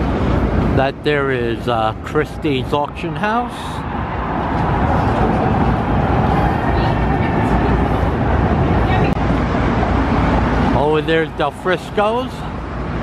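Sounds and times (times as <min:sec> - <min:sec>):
city street traffic: 0:00.0 - 0:13.0.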